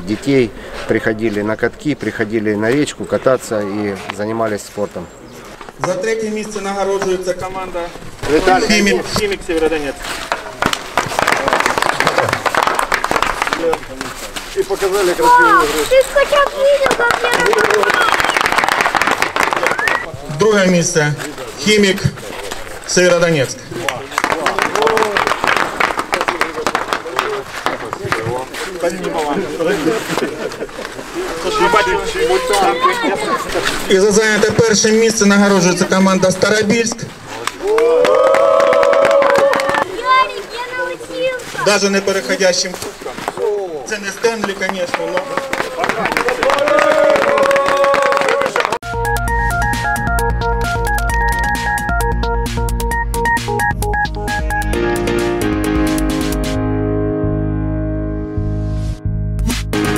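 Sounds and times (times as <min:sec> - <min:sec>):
crowd clapping: 0:10.1 - 0:14.2, 0:15.3 - 0:20.1, 0:23.7 - 0:29.0, 0:37.4 - 0:40.3, 0:44.1 - 0:48.9
men cheering: 0:17.0 - 0:20.1, 0:24.3 - 0:25.6, 0:37.5 - 0:39.9, 0:44.9 - 0:48.8
people calling out: 0:31.2 - 0:33.8.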